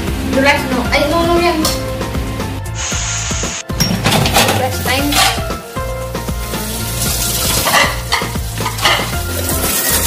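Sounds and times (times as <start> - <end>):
dishes being scrubbed: 3.2 - 5.6, 7.0 - 10.0
crockery clinking: 3.8 - 5.5, 7.6 - 10.0.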